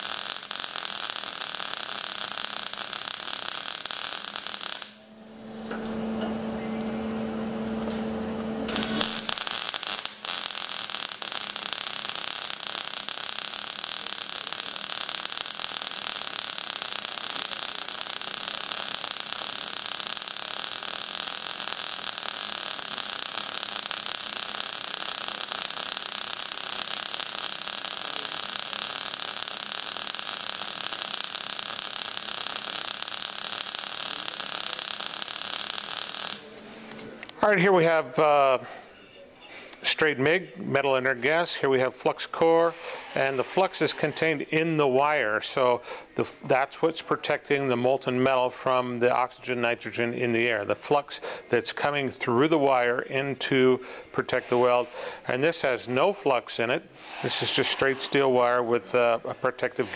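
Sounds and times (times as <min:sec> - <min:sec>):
welding arc crackling: 0:00.0 - 0:06.1, 0:08.6 - 0:37.9, 0:54.2 - 0:59.9
welder hum: 0:00.0 - 0:37.4.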